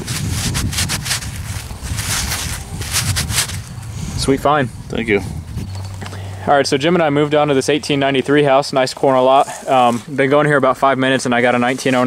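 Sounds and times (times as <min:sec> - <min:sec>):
gloved hand rustling with coin: 0:00.0 - 0:03.9, 0:07.2 - 0:12.0
wind rumble on microphone: 0:00.0 - 0:06.1.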